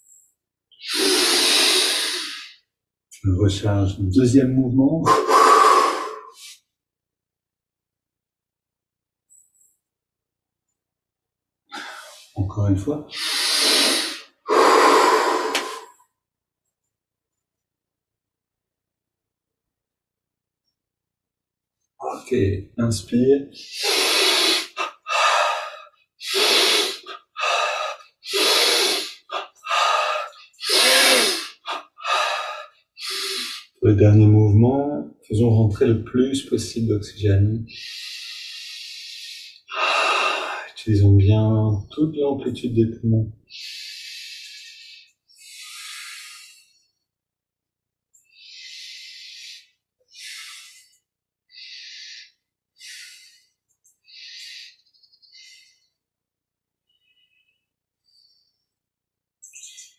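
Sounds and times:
man breathing forcefully: 5.1s - 6.6s, 13.1s - 16.0s, 23.6s - 33.8s.

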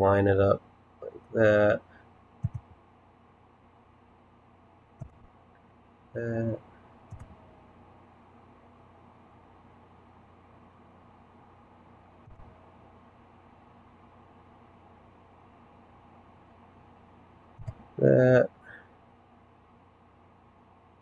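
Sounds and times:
soft clicks: 2.4s - 2.8s, 5.0s - 5.3s, 7.0s - 7.4s.

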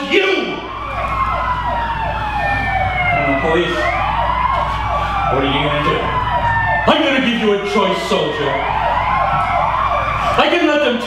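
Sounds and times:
police siren wailing: 0.0s - 11.0s.

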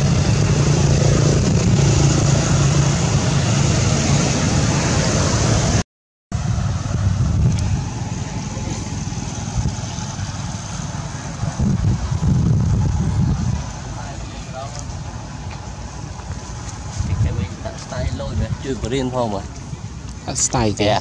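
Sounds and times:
wind rumbling on microphone: 0.0s - 5.8s, 6.4s - 21.0s.

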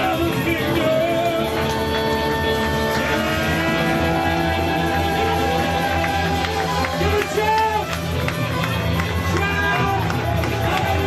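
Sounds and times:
band playing gospel music: 0.0s - 11.0s.

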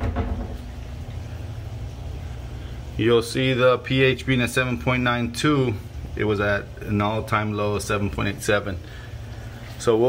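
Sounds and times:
aquarium pumps humming: 0.0s - 10.0s.

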